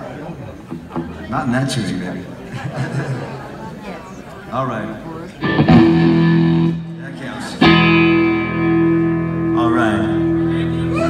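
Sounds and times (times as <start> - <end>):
electric guitar chords: 5.4 - 11.0.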